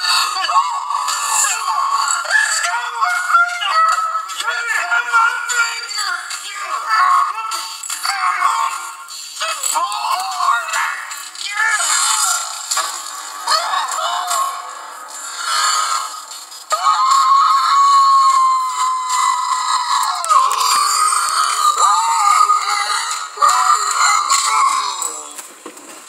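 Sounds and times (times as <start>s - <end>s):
cartoon voices and music: 0.0s - 25.5s
long falling yell: 16.7s - 20.6s.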